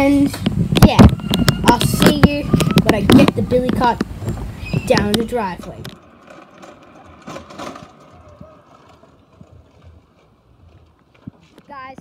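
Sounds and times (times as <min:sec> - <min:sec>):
cart wheels rolling on concrete: 0:00.0 - 0:12.0.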